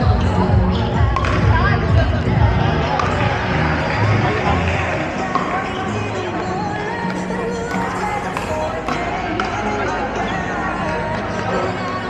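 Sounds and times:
many people talking: 0.0s - 12.0s
ball bouncing on court floor: 1.1s - 1.7s, 2.9s - 4.0s.

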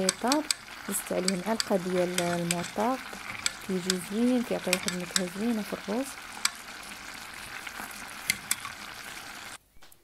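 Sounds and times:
pot simmering and bubbling: 0.0s - 9.6s
wooden spoon stirring pot: 0.0s - 9.6s.

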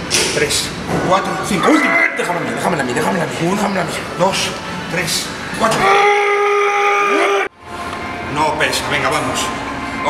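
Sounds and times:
man yelling: 1.6s - 2.4s, 5.6s - 7.5s.

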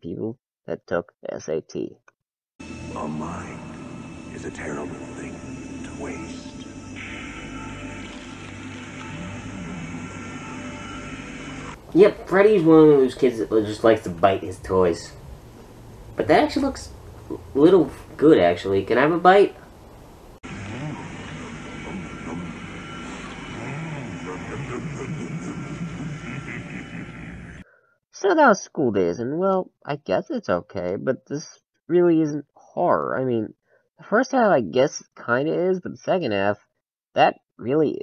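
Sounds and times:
videotape hiss: 2.6s - 26.9s
steady rumbling background: 2.6s - 27.6s
quiet tv soundtrack music: 2.6s - 33.4s.

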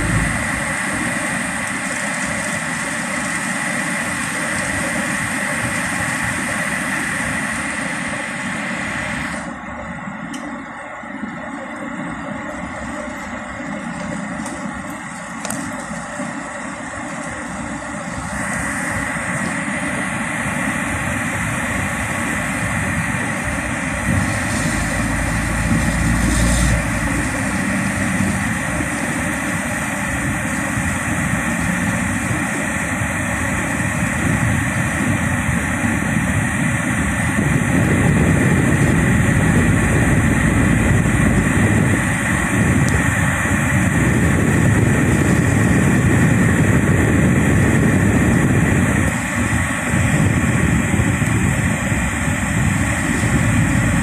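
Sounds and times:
car engine and tyre noise: 0.0s - 54.0s.

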